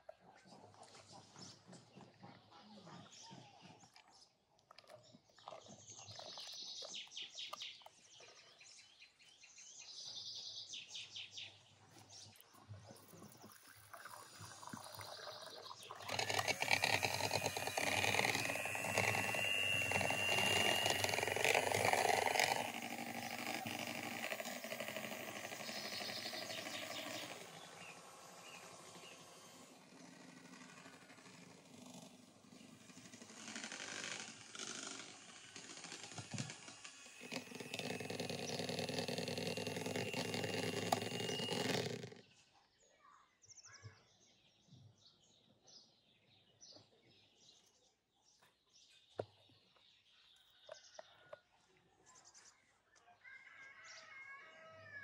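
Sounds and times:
electric hand mixer running: 0:13.0 - 0:42.2.

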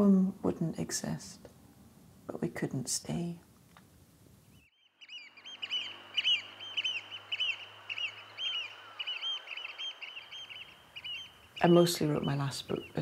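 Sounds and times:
wind: 0:00.0 - 0:13.0
seabirds calling: 0:04.5 - 0:13.0
sea wash: 0:05.2 - 0:13.0.

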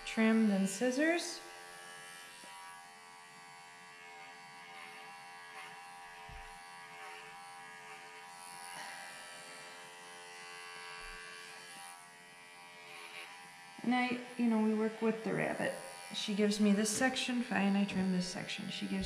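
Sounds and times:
electric clippers buzzing: 0:00.0 - 0:19.0.

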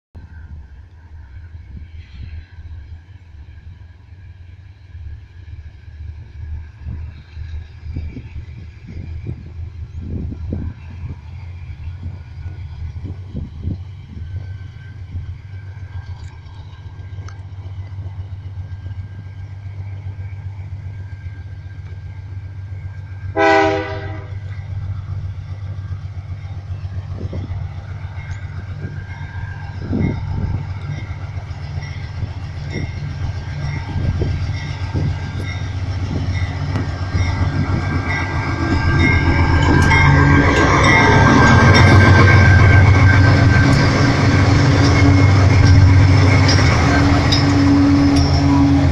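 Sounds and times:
locomotive engine drone: 0:00.2 - 0:48.9
locomotive horn blast: 0:23.3 - 0:24.5, 0:42.4 - 0:48.9.

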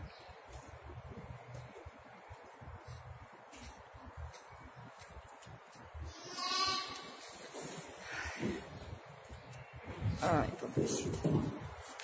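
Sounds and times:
lamb bleating: 0:06.1 - 0:07.2.

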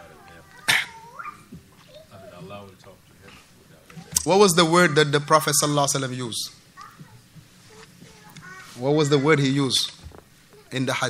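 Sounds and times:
faint indistinct voices: 0:00.0 - 0:04.3.

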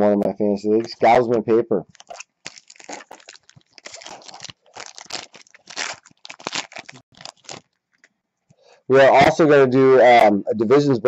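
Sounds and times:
wrapper crinkling: 0:01.9 - 0:08.1.

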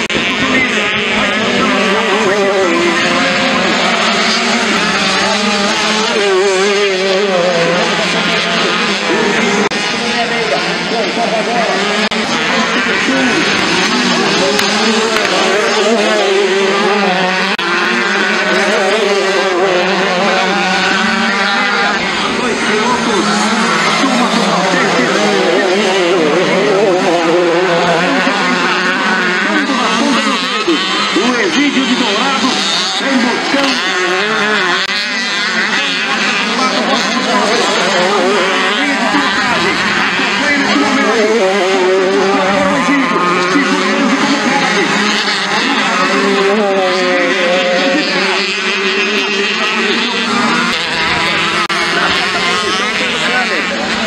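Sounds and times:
dirt bike engines revving: 0:00.0 - 0:54.0.

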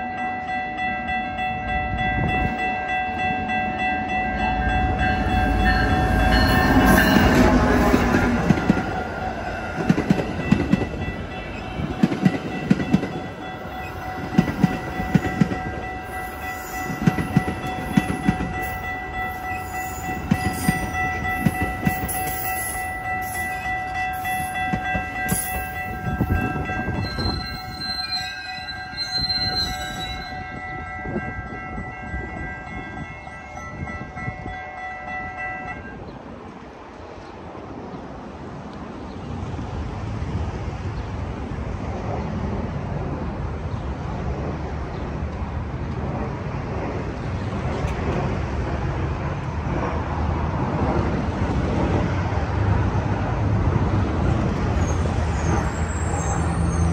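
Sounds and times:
crossing bell: 0:00.0 - 0:36.4
train brake squeal: 0:26.9 - 0:30.5, 0:54.7 - 0:56.9.

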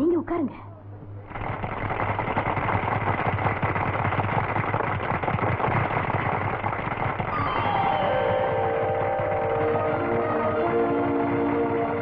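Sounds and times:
crowd applauding: 0:01.2 - 0:12.0.

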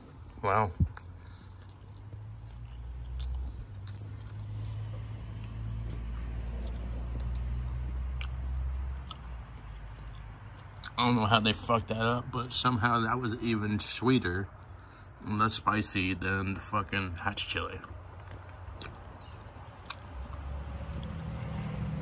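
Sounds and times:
person chewing food: 0:00.0 - 0:11.0, 0:14.4 - 0:15.1, 0:17.8 - 0:21.9
wet mouth clicks: 0:00.9 - 0:04.5, 0:05.4 - 0:11.0, 0:18.2 - 0:21.6.

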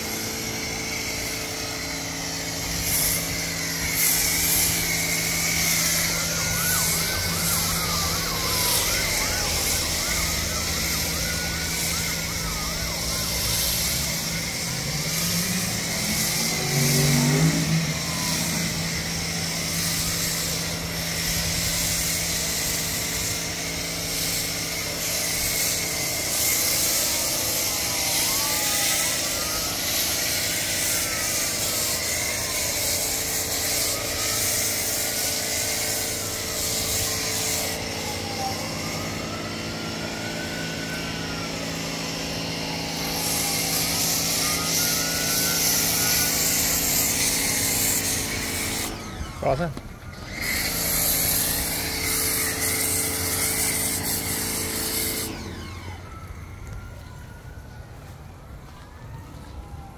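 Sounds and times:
wailing tone: 0:00.0 - 0:21.2, 0:22.1 - 0:57.6
pressure washer spraying: 0:00.0 - 0:55.6.

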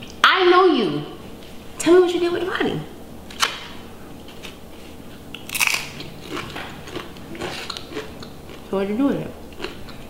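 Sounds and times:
person crunching food: 0:05.3 - 0:08.7, 0:09.4 - 0:10.0.

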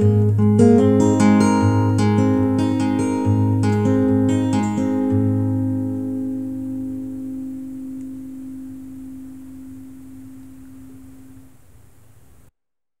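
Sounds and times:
acoustic guitar chord ringing: 0:00.0 - 0:11.6.

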